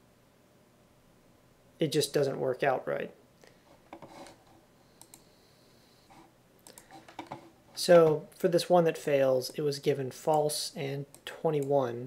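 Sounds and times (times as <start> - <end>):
man speaking: 1.8 - 3.2, 7.8 - 12.0
faint clicks: 5.0 - 5.3, 6.6 - 7.3.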